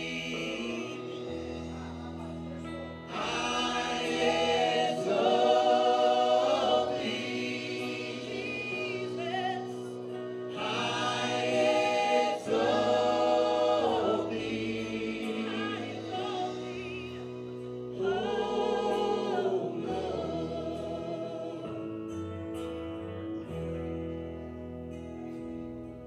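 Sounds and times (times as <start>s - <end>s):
voices singing in harmony: 0.0s - 23.6s
worship band playing: 0.0s - 26.0s.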